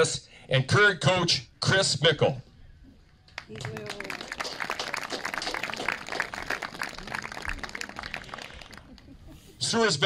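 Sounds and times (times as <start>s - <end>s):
crowd applause: 3.5s - 9.2s.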